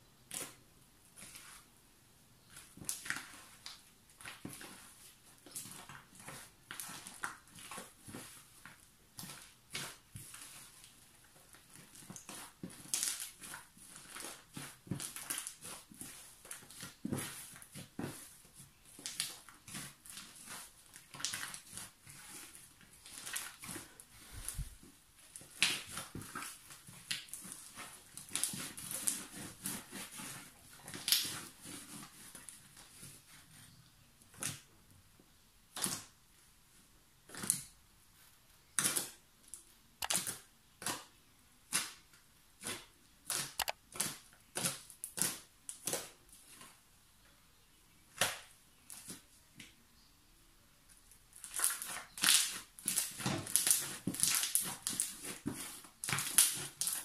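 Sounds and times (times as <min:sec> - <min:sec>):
slime crackling and squelching: 0:00.3 - 0:01.7, 0:02.5 - 0:33.6, 0:38.7 - 0:46.8, 0:51.0 - 0:57.0.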